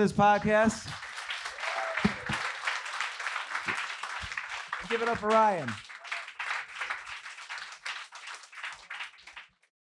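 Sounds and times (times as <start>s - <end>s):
audience applauding: 0.3s - 9.7s.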